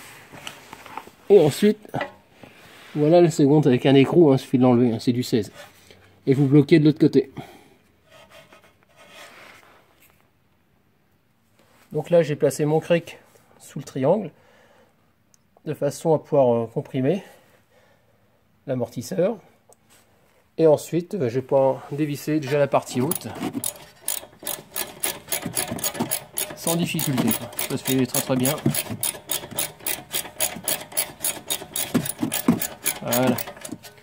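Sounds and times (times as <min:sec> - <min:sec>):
faint rubbing: 0:08.0 - 0:10.0
socket ratchet clicking: 0:23.0 - 0:34.0.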